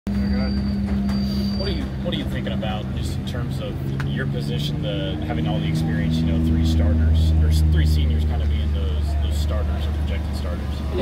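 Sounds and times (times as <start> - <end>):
faint voices: 0.1 - 11.0.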